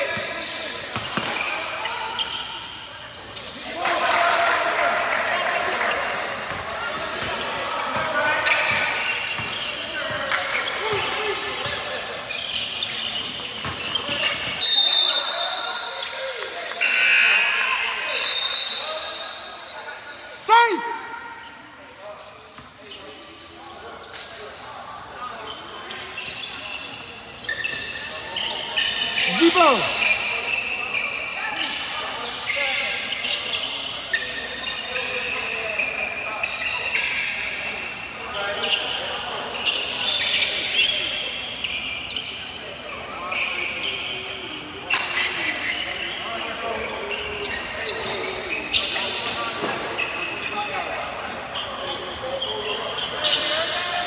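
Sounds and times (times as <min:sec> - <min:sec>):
shoe squeaks: 0:00.0 - 0:03.8, 0:06.4 - 0:54.0
voices echoing in a hall: 0:00.0 - 0:54.0
high whistle blasts: 0:14.6 - 0:15.6, 0:16.8 - 0:19.7.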